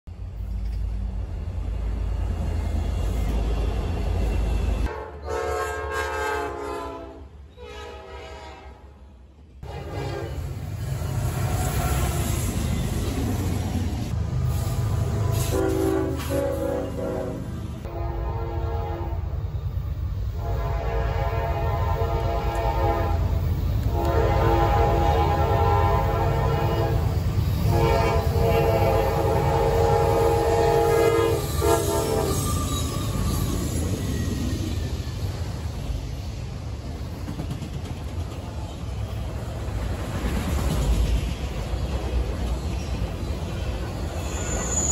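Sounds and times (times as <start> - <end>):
train rumbling: 0.1 - 44.9
locomotive air horn blasts: 4.8 - 9.0, 9.6 - 10.5, 15.1 - 19.4, 20.4 - 32.9.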